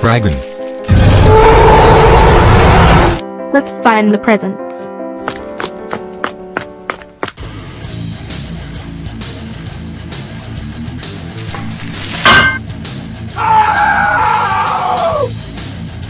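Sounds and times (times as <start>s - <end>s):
heavy rock music: 7.4s - 16.0s.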